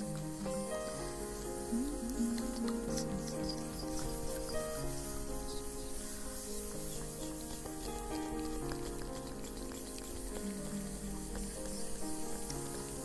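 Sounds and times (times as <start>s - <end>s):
faint crackling hiss: 0.0s - 13.0s
slow soft piano music: 0.0s - 13.0s.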